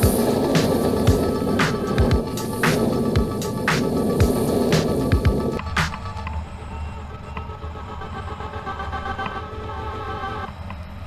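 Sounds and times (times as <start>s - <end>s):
steady tones: 0.0s - 11.0s.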